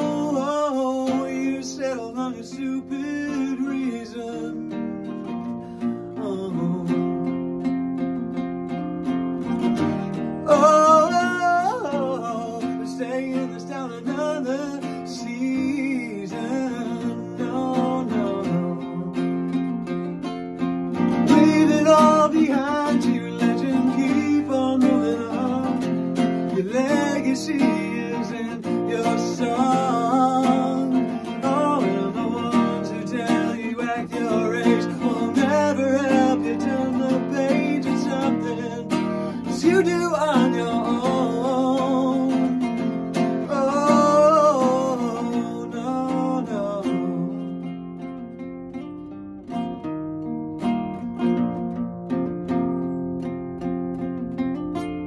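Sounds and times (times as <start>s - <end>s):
wordless vocals: 0.0s - 7.9s, 9.7s - 20.0s, 20.9s - 48.1s
acoustic guitar: 0.0s - 55.0s.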